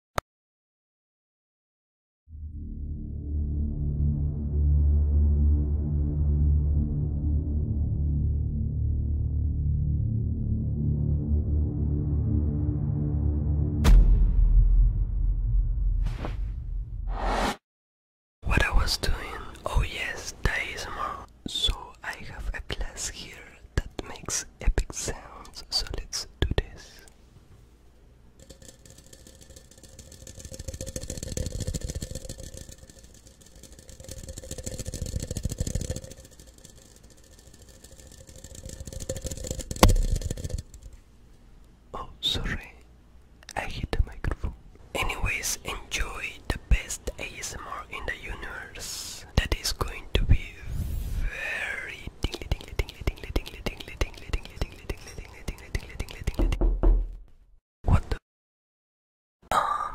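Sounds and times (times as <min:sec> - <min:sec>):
person whispering: 0:18.4 - 0:27.1, 0:41.9 - 0:42.8, 0:43.4 - 0:56.6, 0:57.9 - 0:58.2, 0:59.5 - 0:59.9
faint steady hum: 0:18.5 - 0:56.4.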